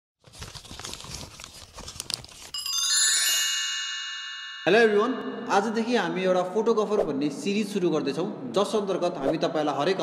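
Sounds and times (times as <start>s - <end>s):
paper-like crinkling and crunching: 0.2s - 2.6s
bright shimmering chime: 2.6s - 6.7s.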